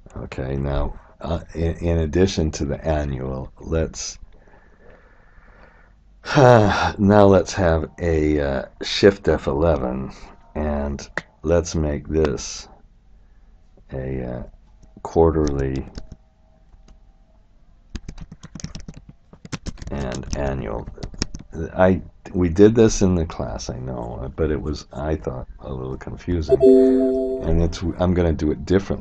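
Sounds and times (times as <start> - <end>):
faint background noise: 0.0 - 29.0
typing on computer keyboard: 18.0 - 19.9
person speaking: 26.5 - 28.0.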